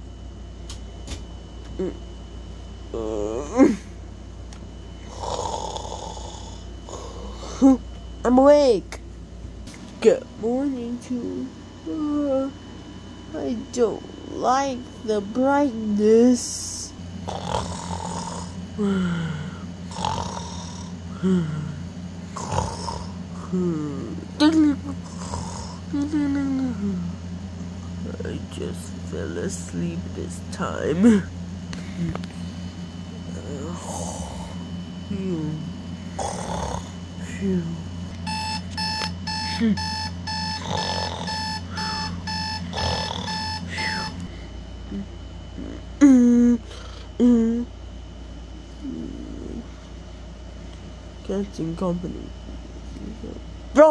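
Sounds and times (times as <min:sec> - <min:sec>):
person making mock snores: 0:05.0 - 0:07.8, 0:17.2 - 0:24.0, 0:24.8 - 0:27.1, 0:33.4 - 0:34.6, 0:36.2 - 0:37.0, 0:39.4 - 0:44.3, 0:44.9 - 0:47.7
alarm clock beeping: 0:38.2 - 0:44.2.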